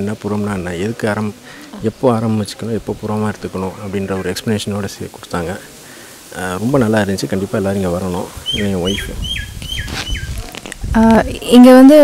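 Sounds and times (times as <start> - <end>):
man speaking: 0.0 - 9.3.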